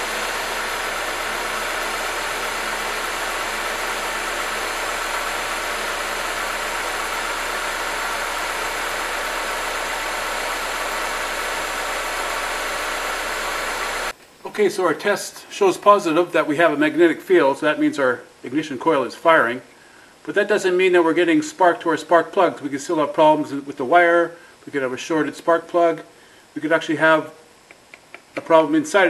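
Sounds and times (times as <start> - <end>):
car engine idling: 0.0 - 14.2.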